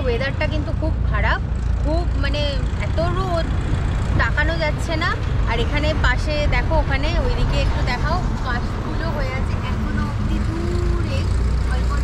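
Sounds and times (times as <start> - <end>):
highway traffic rumble: 0.0 - 12.0.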